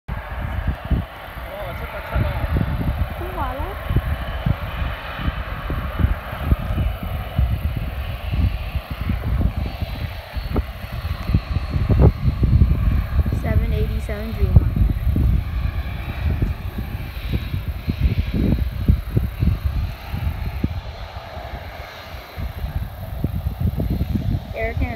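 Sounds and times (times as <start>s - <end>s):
voices: 0.1s - 8.0s, 13.2s - 14.9s, 20.4s - 24.9s
distant jet engine hum: 0.1s - 24.9s
wind buffeting microphone: 0.1s - 24.9s.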